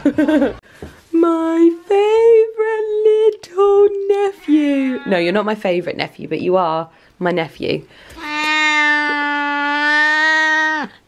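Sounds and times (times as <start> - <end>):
cat meowing: 8.2 - 10.9.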